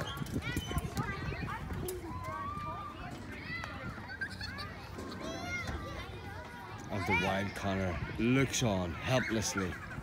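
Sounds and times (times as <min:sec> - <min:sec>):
children shouting and calling: 0:00.0 - 0:10.0.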